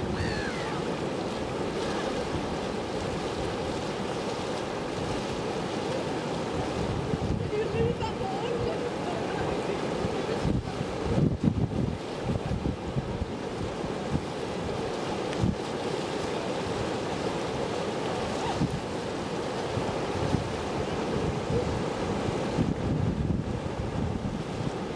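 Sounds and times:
wind buffeting microphone: 0:00.0 - 0:15.8, 0:16.6 - 0:24.9
surf washing: 0:00.0 - 0:24.9.

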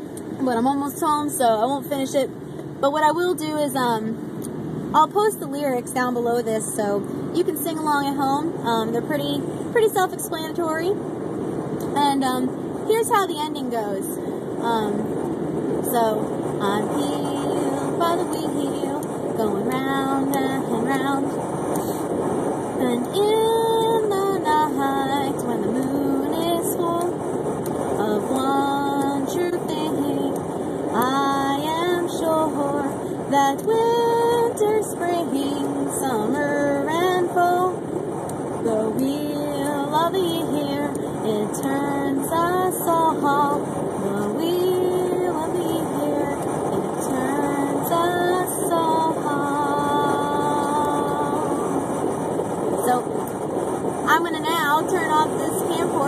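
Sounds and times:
road noise inside car: 0:00.0 - 0:56.0
woman singing unaccompanied: 0:00.4 - 0:04.2, 0:05.0 - 0:11.0, 0:11.8 - 0:15.2, 0:15.8 - 0:21.4, 0:22.8 - 0:27.2, 0:28.0 - 0:37.8, 0:38.6 - 0:51.9, 0:52.8 - 0:53.2, 0:54.0 - 0:56.0.

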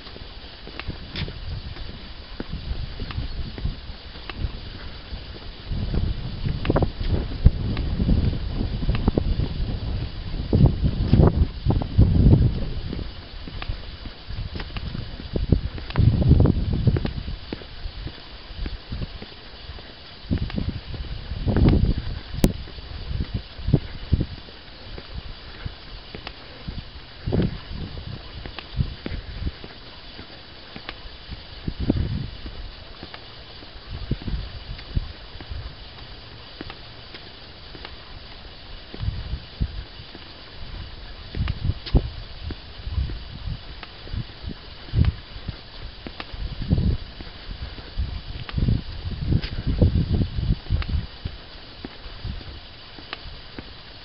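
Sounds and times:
faint steady hiss: 0:00.0 - 0:54.0
footsteps on tarmac: 0:00.0 - 0:54.0
wind gusting on microphone: 0:00.0 - 0:54.0.

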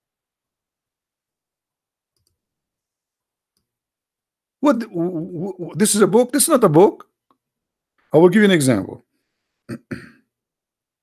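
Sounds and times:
man clearing his throat: 0:09.7 - 0:10.3.

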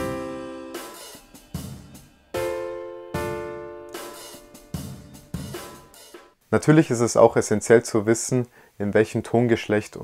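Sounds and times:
keyboard chord: 0:00.0 - 0:06.0
cymbal hits: 0:00.0 - 0:06.2
programmed drum beat: 0:00.0 - 0:06.4.

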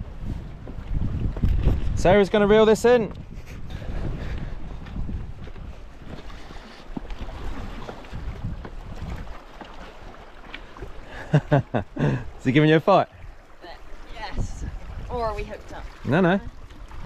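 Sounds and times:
wind rumbling on microphone: 0:00.0 - 0:17.0
sea washing against rocks: 0:06.2 - 0:11.7.

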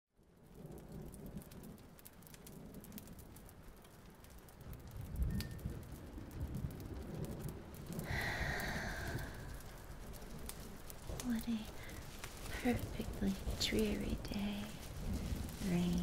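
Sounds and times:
rain hiss: 0:00.2 - 0:16.0
thunder rumble: 0:00.2 - 0:16.0.

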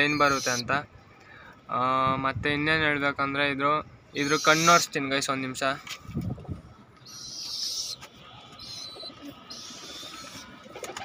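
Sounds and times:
pigeon cooing: 0:07.2 - 0:11.0.

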